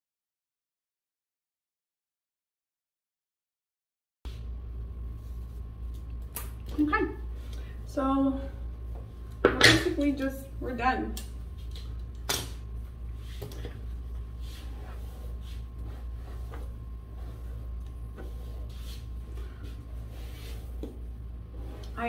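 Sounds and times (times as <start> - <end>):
low steady hum: 4.3 - 22.0.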